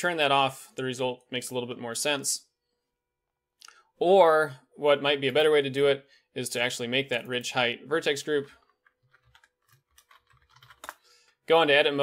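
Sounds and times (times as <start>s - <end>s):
computer keyboard typing: 8.7s - 11.0s.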